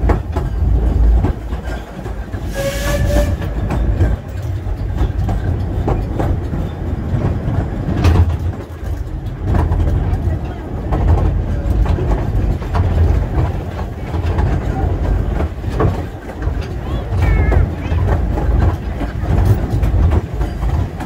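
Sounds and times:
train carriage rumbling: 0.0s - 21.0s
wheels clicking on rails: 0.0s - 21.0s.

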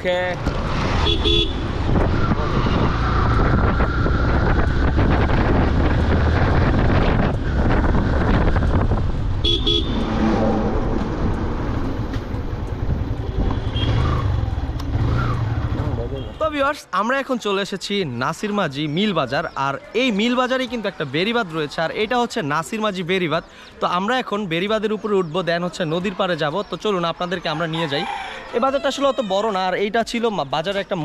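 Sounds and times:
rushing wind noise: 0.4s - 15.5s
motorcycle horn toot: 1.1s - 1.6s, 9.4s - 10.0s.

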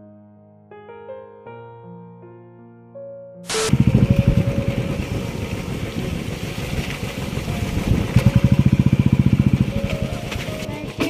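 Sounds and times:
small engine running: 3.5s - 11.0s.

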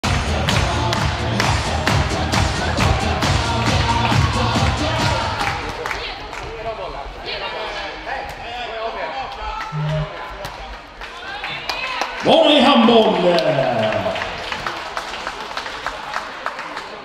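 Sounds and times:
players and spectators calling: 0.0s - 5.8s.

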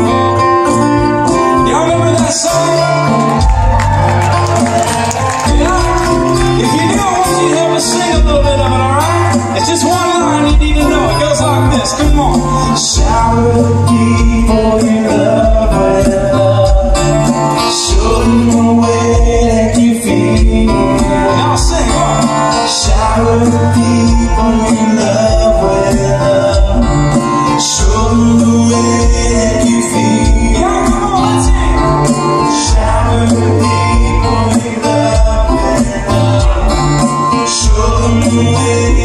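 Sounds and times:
bass: 0.0s - 39.0s
keyboard: 0.0s - 39.0s
person singing: 0.0s - 39.0s
strummed acoustic guitars: 0.0s - 39.0s.

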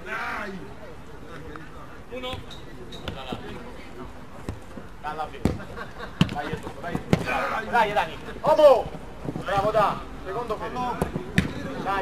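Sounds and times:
football kicked and bouncing on turf: 2.2s - 3.6s, 4.4s - 7.4s, 8.5s - 10.0s, 10.6s - 12.0s.

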